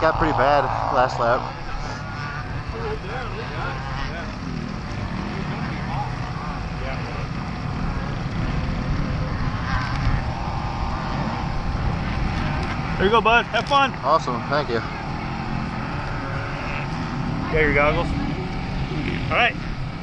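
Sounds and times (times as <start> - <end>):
dirt bike engines running: 0.0 - 20.0
faint voices: 0.0 - 20.0.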